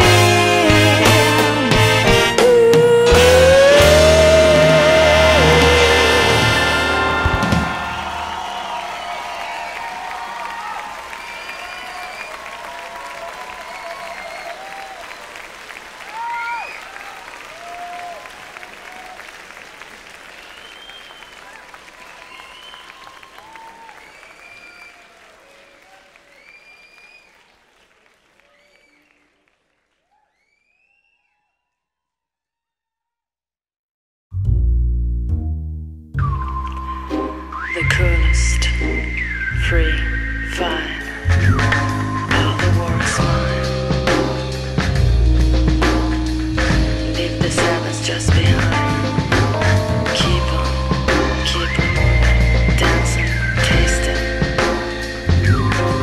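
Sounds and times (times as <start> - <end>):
crowd applause: 3.8 - 30.8
cheers and whistles: 3.8 - 31.7, 36.2 - 42.6.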